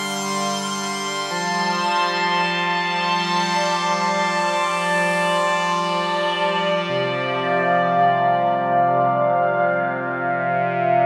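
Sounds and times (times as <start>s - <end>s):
synthesizer ambient pad chord: 5.3s - 11.0s.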